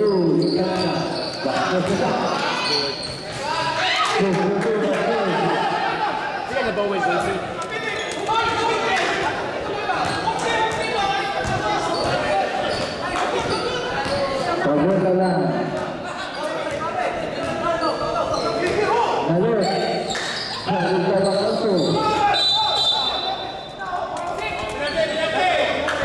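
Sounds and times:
players and spectators shouting: 1.2s - 4.5s, 5.1s - 15.0s, 15.9s - 26.0s.

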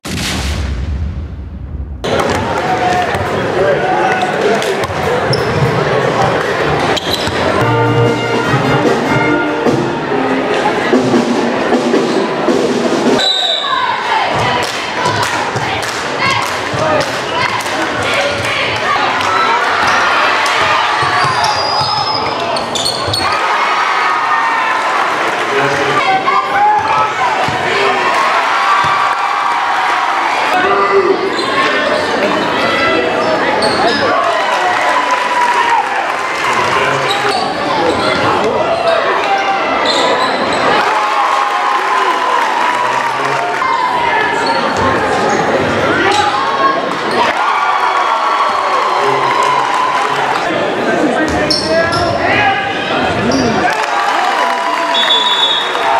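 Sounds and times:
crowd voices: 1.8s - 55.9s
music: 7.3s - 13.2s.

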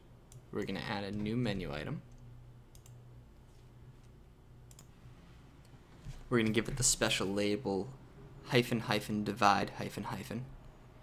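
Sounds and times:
low steady hum: 0.0s - 11.0s
computer mouse clicks: 2.1s - 3.0s, 4.0s - 5.0s.

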